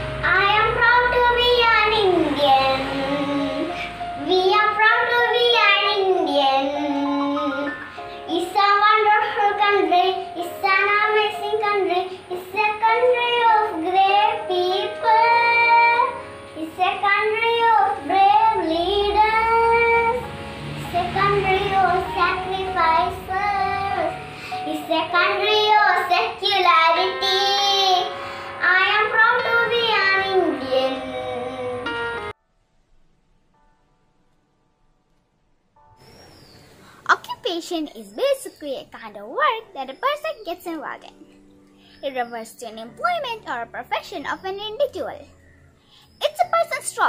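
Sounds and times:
girl singing: 0:00.0 - 0:32.3, 0:37.0 - 0:41.3, 0:41.9 - 0:45.3, 0:46.0 - 0:47.0.

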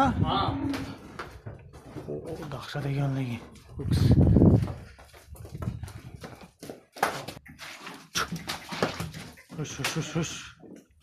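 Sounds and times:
hooves on hard floor: 0:00.7 - 0:09.6.

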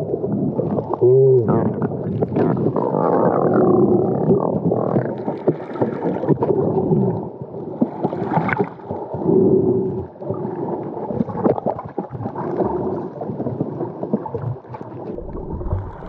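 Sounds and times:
underwater water churning and bubbling: 0:00.0 - 0:16.0.

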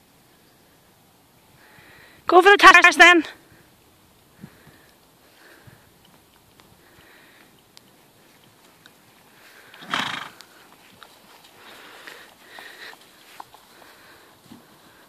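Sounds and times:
soft hoofbeats on grass: 0:00.8 - 0:15.0
horse blowing: 0:09.6 - 0:10.7.

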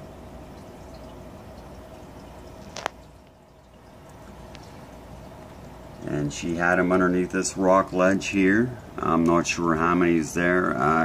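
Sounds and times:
aquarium water trickling and bubbling: 0:00.0 - 0:11.0.

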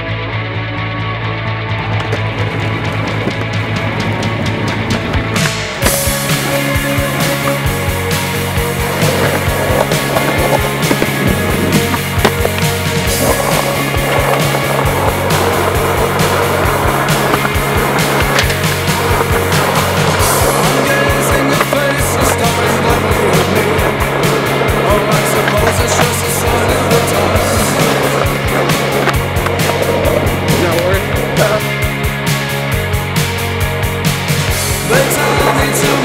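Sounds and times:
rock song: 0:00.0 - 0:36.0
skateboard wheels rolling on asphalt: 0:00.0 - 0:36.0
skateboard clacking: 0:01.7 - 0:32.9, 0:34.0 - 0:36.0.

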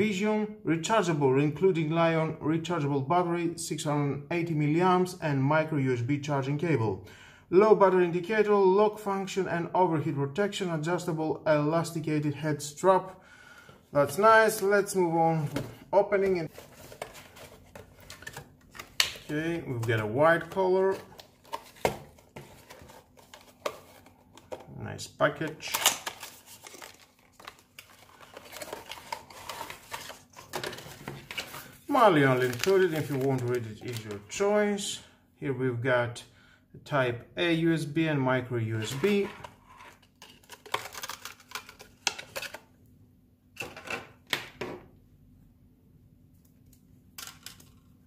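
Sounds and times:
plastic packaging clicks and taps: 0:17.8 - 0:20.0
plastic packaging crackling: 0:25.6 - 0:34.2, 0:40.2 - 0:42.6.

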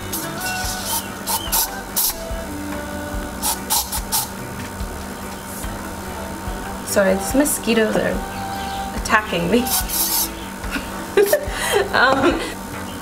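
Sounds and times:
aerosol spray hissing: 0:00.0 - 0:02.5, 0:03.1 - 0:11.9.

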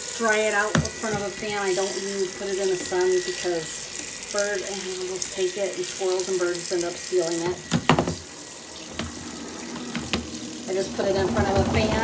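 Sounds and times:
washing machine draining water: 0:00.0 - 0:12.0.

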